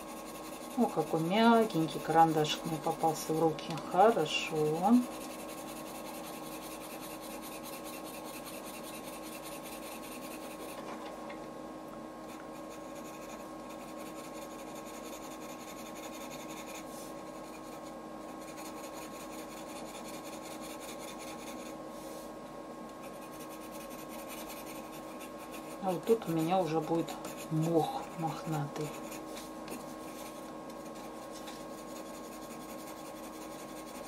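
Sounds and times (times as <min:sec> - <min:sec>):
pencil scratching on paper: 0:00.0 - 0:10.9, 0:12.3 - 0:21.8, 0:23.0 - 0:34.0.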